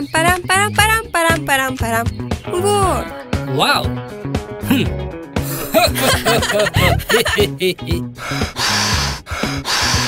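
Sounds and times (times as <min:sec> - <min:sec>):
hissing breaths blowing: 0:08.0 - 0:10.0.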